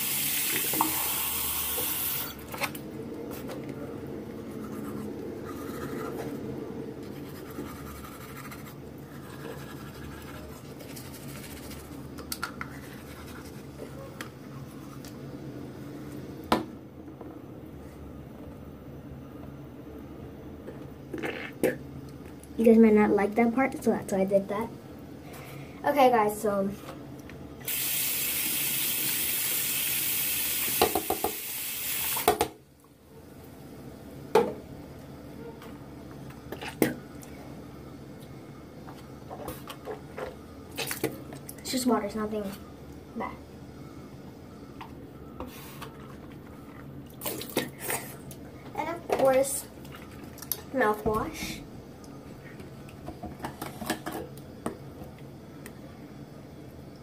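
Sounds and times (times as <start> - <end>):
tap running into sink: 30.7 - 31.4.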